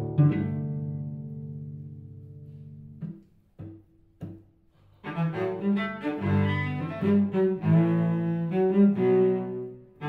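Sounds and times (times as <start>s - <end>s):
bowed cello melody: 0.0s - 10.0s
plucked cello notes: 0.0s - 10.0s.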